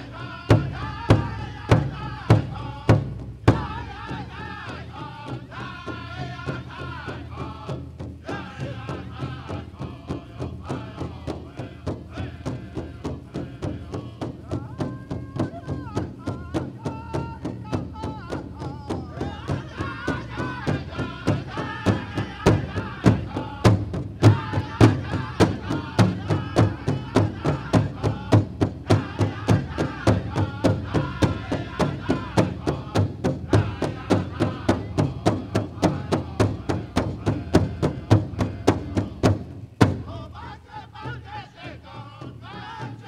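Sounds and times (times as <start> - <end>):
big drum fast steady beat: 0.0 - 43.0.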